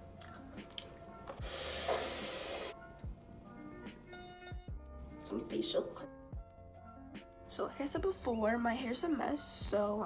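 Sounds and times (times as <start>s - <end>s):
music with a steady beat: 0.6s - 5.1s
spray bottle hissing: 1.4s - 2.8s.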